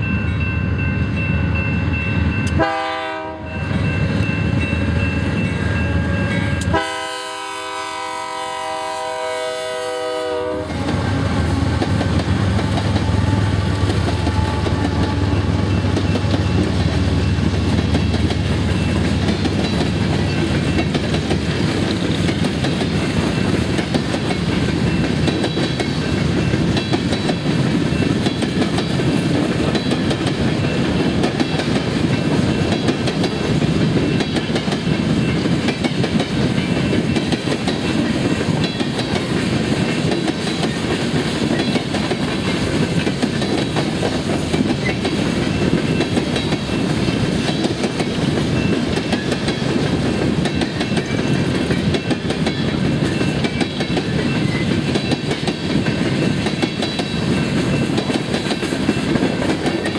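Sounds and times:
rail cars rumbling and clattering: 0:00.0 - 0:59.9
locomotive horn blasts: 0:02.5 - 0:03.7, 0:05.6 - 0:11.8.

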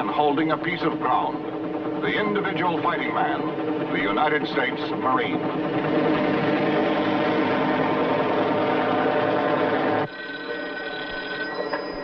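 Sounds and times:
helicopter engine and rotors: 0:00.0 - 0:12.0
desk telephone ringing: 0:10.0 - 0:12.0.

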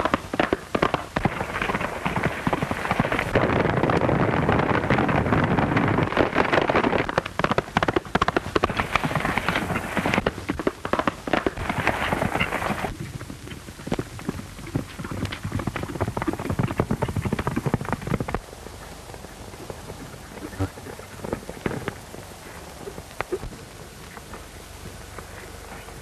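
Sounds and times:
horses galloping hooves clattering: 0:00.0 - 0:26.0.

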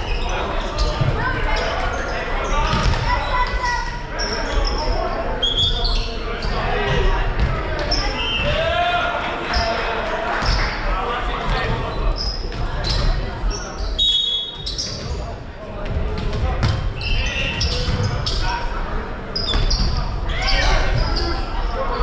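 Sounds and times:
sneakers squeaking: 0:00.0 - 0:08.8, 0:09.4 - 0:22.0
people talking: 0:00.0 - 0:22.0.

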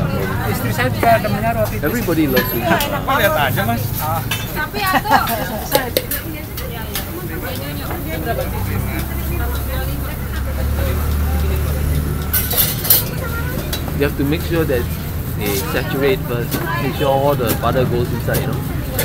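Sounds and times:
metal utensils scraping pans: 0:00.0 - 0:19.0.

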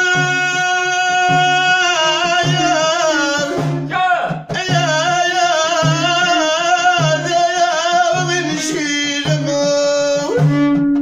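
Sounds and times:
man singing: 0:00.0 - 0:10.8
frame drums beating slowly: 0:00.0 - 0:11.0.

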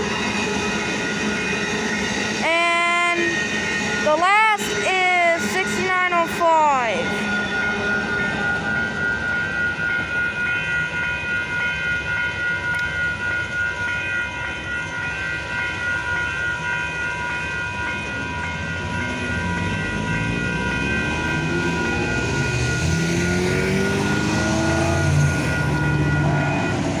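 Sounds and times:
crossing warning bells ringing: 0:00.0 - 0:27.0
train cars squealing: 0:00.0 - 0:27.0
car engines pulling away: 0:19.0 - 0:26.6.

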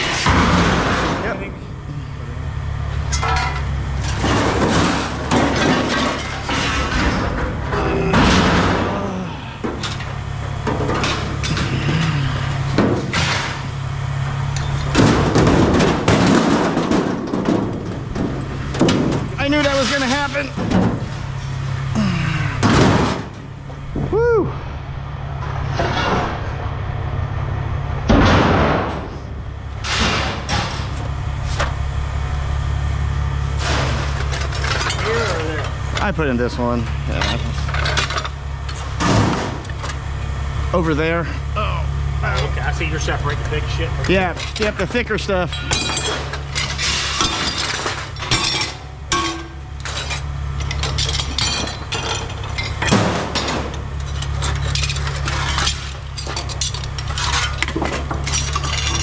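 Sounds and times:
scrap metal clattering and banging: 0:00.0 - 0:24.1, 0:25.4 - 0:26.9, 0:27.7 - 0:31.9, 0:32.7 - 0:41.4, 0:42.3 - 0:59.0
steady low hum: 0:00.0 - 0:59.0.

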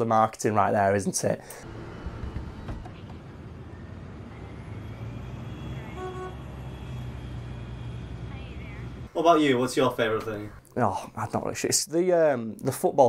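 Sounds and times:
traffic rumble: 0:01.4 - 0:11.7
short car horn toot: 0:05.9 - 0:06.4.

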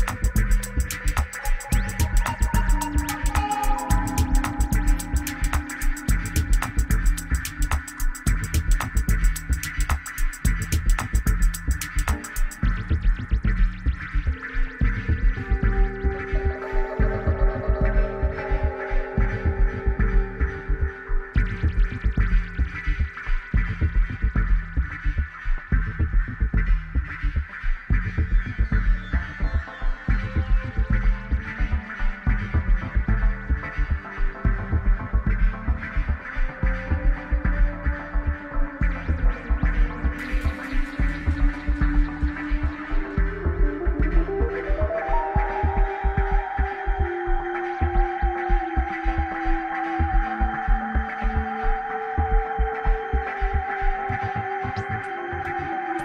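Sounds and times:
heavy pulsing bass beat: 0:00.0 - 0:55.7
sustained synthesizer tones: 0:00.0 - 0:56.0
deep repeating kick drum: 0:03.9 - 0:37.9, 0:38.8 - 0:44.5.

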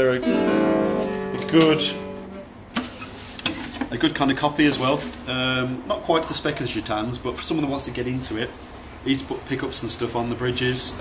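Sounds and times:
acoustic guitar strings ringing: 0:00.0 - 0:02.5.

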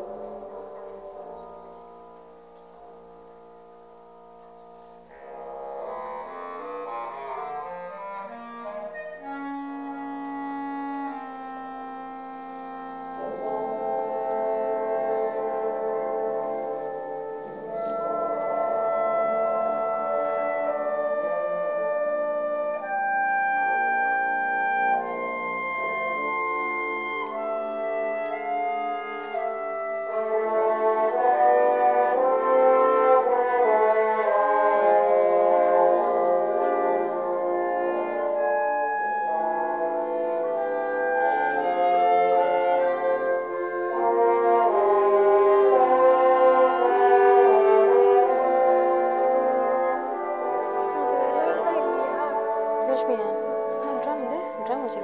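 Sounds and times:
wind band playing sustained chords: 0:00.0 - 0:55.0.

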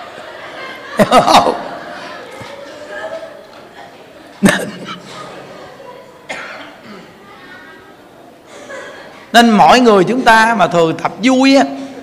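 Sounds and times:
man coughing: 0:04.4 - 0:05.3, 0:06.3 - 0:07.1.

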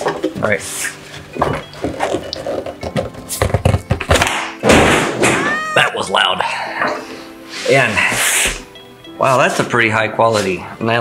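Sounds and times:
loud thud: 0:04.3 - 0:05.5.

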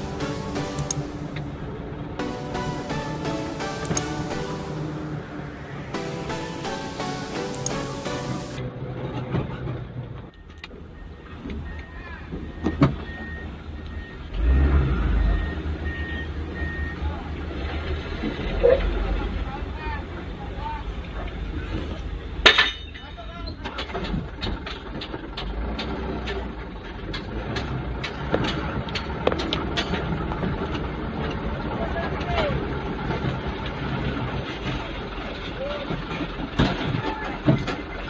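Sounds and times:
diesel truck engines running: 0:00.0 - 0:38.0
reversing alarm beeping: 0:10.3 - 0:17.4
sharp knocks and rattles: 0:22.4 - 0:31.4, 0:34.4 - 0:38.0.

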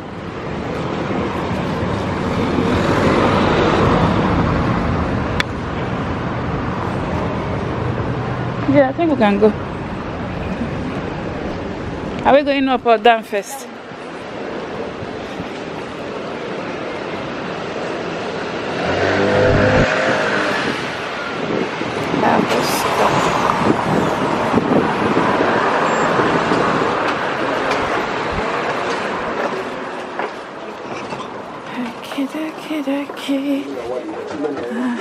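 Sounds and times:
traffic hum: 0:00.0 - 0:35.0
car passing close by: 0:18.1 - 0:29.4.

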